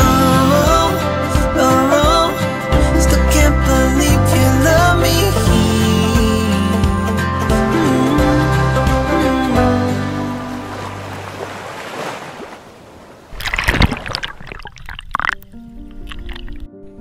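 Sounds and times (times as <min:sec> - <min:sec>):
background music: 0:00.0 - 0:11.6
soft music: 0:00.0 - 0:11.7, 0:15.1 - 0:17.0
water splashing and gurgling: 0:09.1 - 0:17.0.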